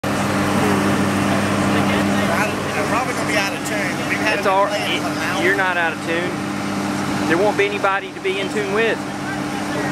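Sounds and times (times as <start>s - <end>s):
low machine hum: 0.0s - 9.9s
people talking: 0.6s - 6.4s, 7.2s - 9.9s.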